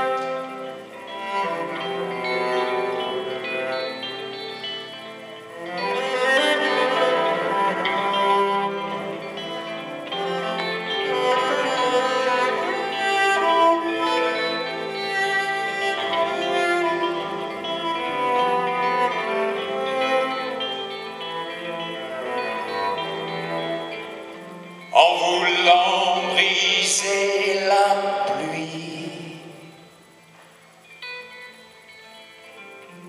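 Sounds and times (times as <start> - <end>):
bowed cello: 0.0 - 29.7
electric guitar: 0.0 - 33.0.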